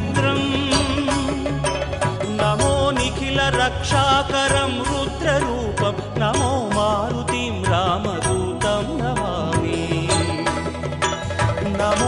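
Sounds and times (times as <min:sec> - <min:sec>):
devotional instrumental music: 0:00.0 - 0:12.0
steady percussion beat: 0:00.0 - 0:12.0.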